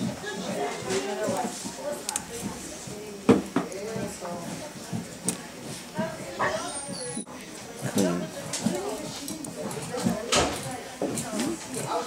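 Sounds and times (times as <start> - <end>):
indistinct voices talking quietly: 0.0 - 12.0.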